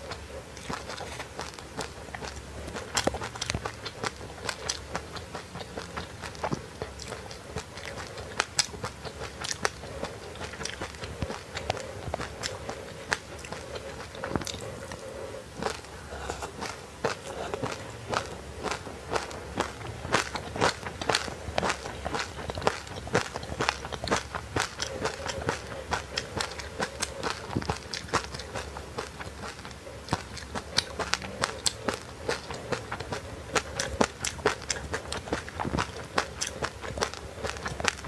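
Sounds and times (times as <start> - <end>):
crisp crunching while chewing: 0.0 - 38.0.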